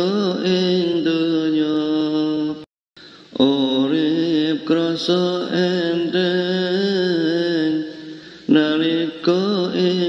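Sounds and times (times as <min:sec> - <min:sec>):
solo voice chanting devotional song: 0:00.0 - 0:10.0.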